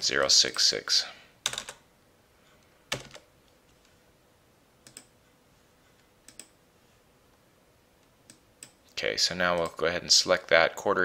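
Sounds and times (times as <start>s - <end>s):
computer mouse clicks: 4.8s - 5.1s, 6.2s - 6.6s, 8.2s - 8.8s.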